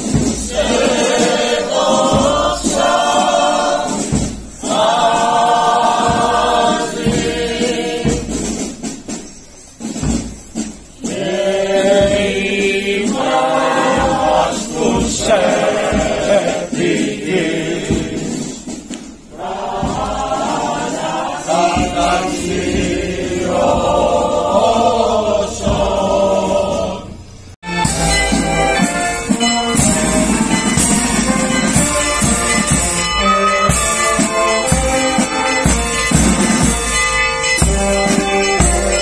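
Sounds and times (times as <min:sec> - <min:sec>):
choir singing a hymn: 0:00.0 - 0:09.0, 0:11.0 - 0:39.0.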